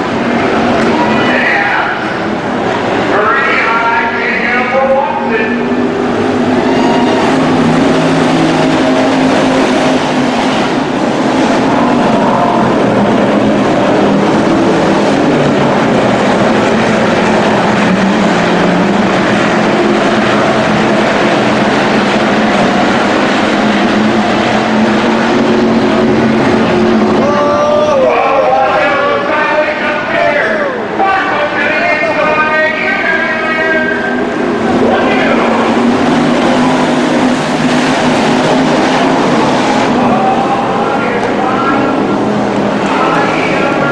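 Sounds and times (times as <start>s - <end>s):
race car engines running hard: 0.0s - 43.9s.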